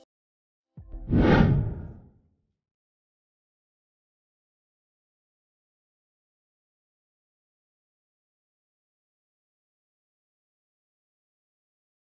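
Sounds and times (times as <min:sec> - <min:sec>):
whoosh sound effect: 0:01.0 - 0:02.0.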